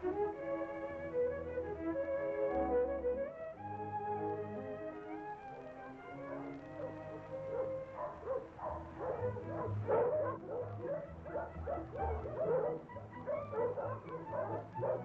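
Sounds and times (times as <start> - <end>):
orchestral film music: 0.0 - 15.0
dogs barking: 6.2 - 15.0.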